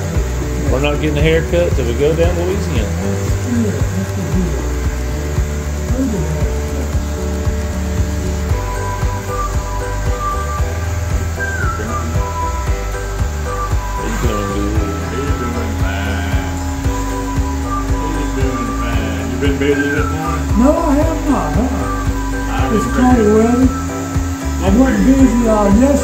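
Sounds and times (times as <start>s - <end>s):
background music: 0.0s - 26.0s
electric hair clippers buzzing: 0.0s - 26.0s
person speaking: 0.4s - 8.7s, 11.2s - 26.0s.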